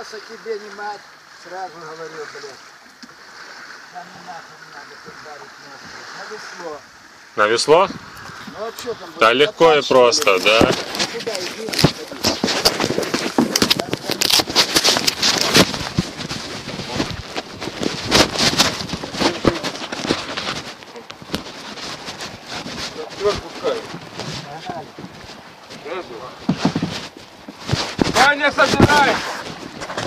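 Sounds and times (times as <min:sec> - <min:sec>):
microphone handling noise: 0:07.4 - 0:30.0.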